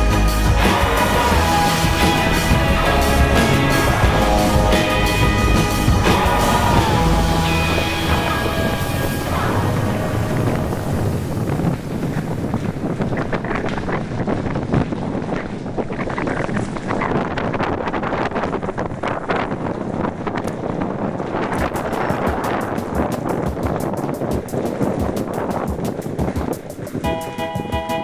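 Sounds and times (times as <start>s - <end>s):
wind buffeting microphone: 0.0s - 28.0s
mountain bike rolling over gravel: 6.8s - 27.1s.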